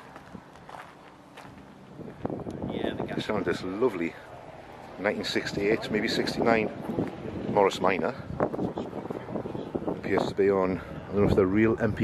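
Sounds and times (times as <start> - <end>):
footsteps on gravel: 0.0 - 2.4.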